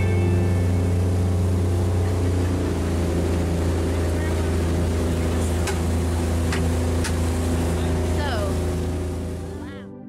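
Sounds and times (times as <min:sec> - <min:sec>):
water rushing past hull: 0:00.0 - 0:09.7
motorboat engine humming: 0:00.0 - 0:10.0.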